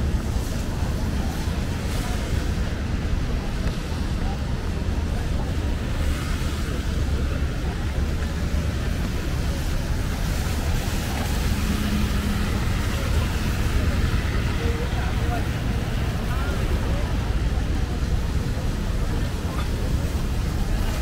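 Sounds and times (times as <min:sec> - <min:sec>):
faint distant voices: 0:00.0 - 0:21.0
traffic rumble: 0:00.0 - 0:21.0
wind: 0:00.0 - 0:21.0.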